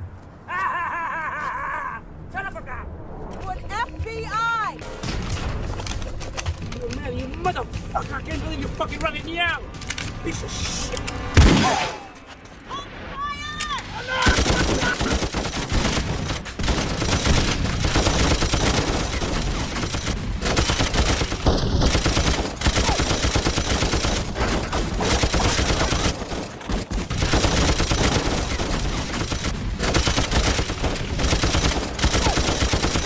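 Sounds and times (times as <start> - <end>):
rapid gunfire: 14.2 - 33.0.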